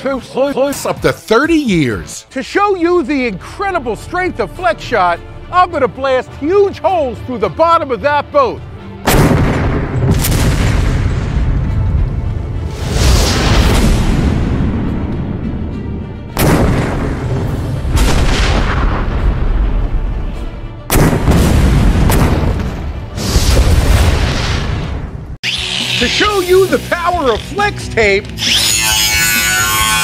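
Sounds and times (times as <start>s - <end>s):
cannon booms with rolling rumble: 9.1s - 12.4s, 16.4s - 20.2s, 20.9s - 25.2s.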